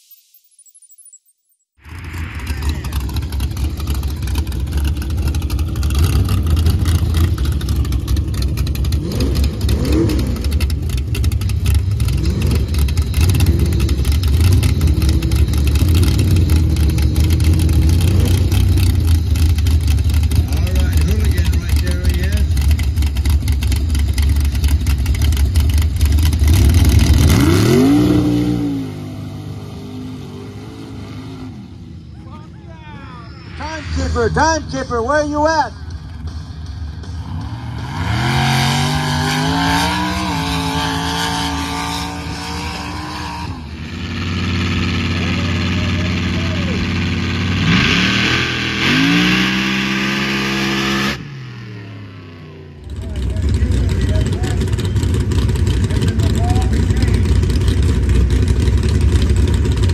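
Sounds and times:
truck engine revving: 0:01.8 - 0:59.9.

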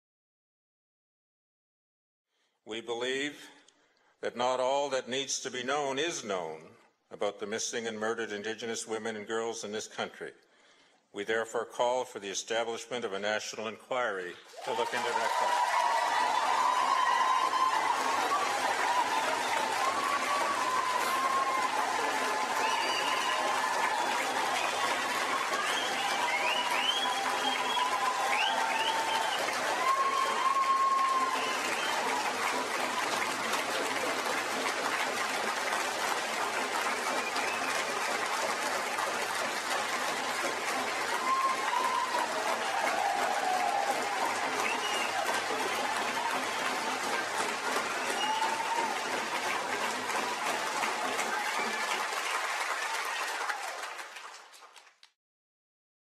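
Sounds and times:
audience applauding: 0:14.5 - 0:55.2.

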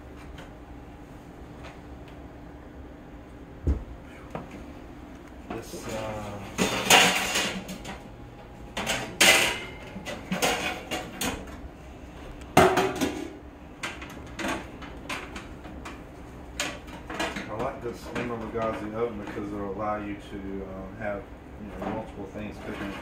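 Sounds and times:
kitchenware clattering: 0:05.6 - 0:08.0, 0:08.7 - 0:11.6, 0:12.6 - 0:15.4.

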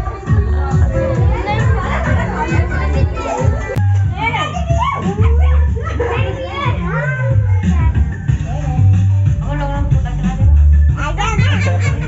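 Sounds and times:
children shouting and squealing: 0:00.0 - 0:08.8
party music with heavy bass: 0:00.0 - 0:12.0.

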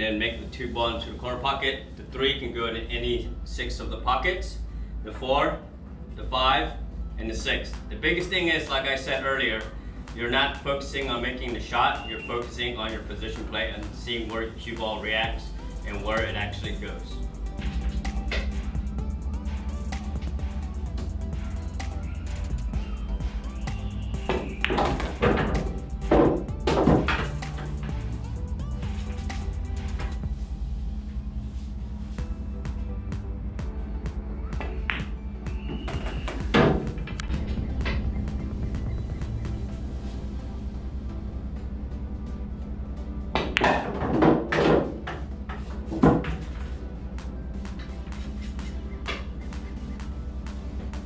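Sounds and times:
background music with low beat: 0:00.0 - 0:01.7, 0:02.4 - 0:51.0
pool balls clacking: 0:24.2 - 0:28.2, 0:34.6 - 0:38.1, 0:43.3 - 0:46.8, 0:47.7 - 0:49.9.

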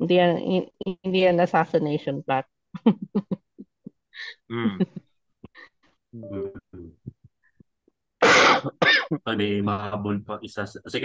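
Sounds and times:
person grunting: 0:04.5 - 0:04.8.

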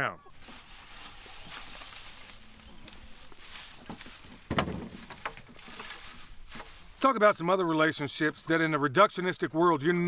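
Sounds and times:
dry hay rustling: 0:00.3 - 0:07.4
loud thump: 0:04.5 - 0:05.5.

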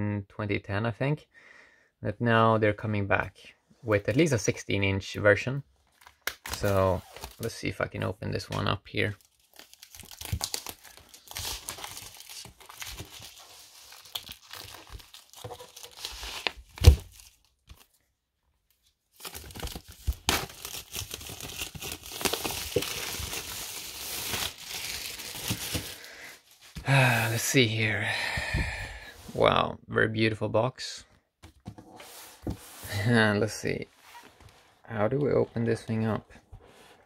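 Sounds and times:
plastic wrapping crinkling: 0:09.2 - 0:17.9, 0:19.2 - 0:26.8.

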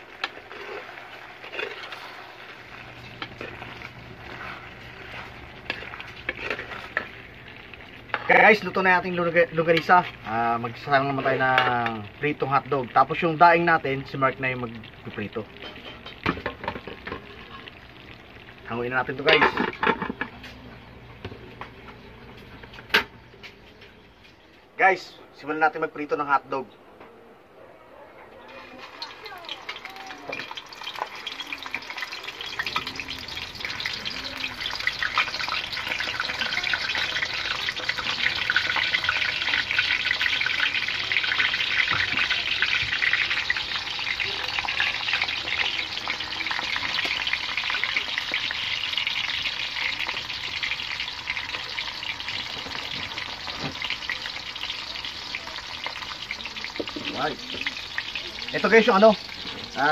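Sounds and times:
hot dogs sizzling in oil: 0:00.0 - 0:25.0, 0:28.4 - 0:59.9.

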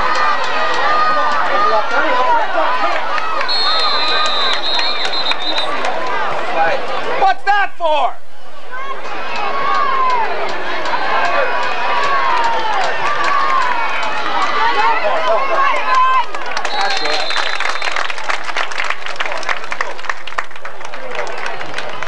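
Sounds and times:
crowd clapping: 0:00.0 - 0:06.7, 0:09.3 - 0:22.0
crowd shouting and cheering: 0:00.0 - 0:22.0
referee whistle: 0:03.4 - 0:05.8, 0:16.6 - 0:18.1.

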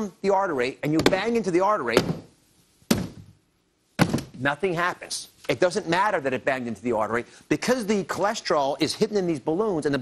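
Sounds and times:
plastic box thunk: 0:04.0 - 0:04.4.

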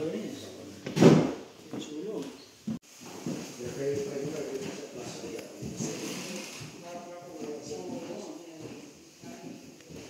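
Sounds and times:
loud knock: 0:00.9 - 0:01.4
people talking quietly: 0:03.6 - 0:10.0.

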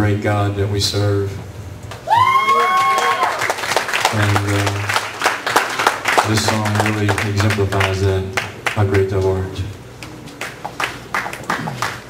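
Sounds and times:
audience hand claps: 0:02.4 - 0:09.4, 0:10.0 - 0:12.0.

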